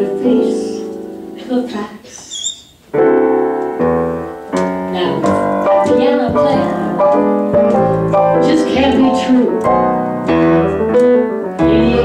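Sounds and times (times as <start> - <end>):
piano chords ringing: 0.0 - 2.1, 2.8 - 12.0
upright bass: 4.8 - 11.0, 11.6 - 12.0.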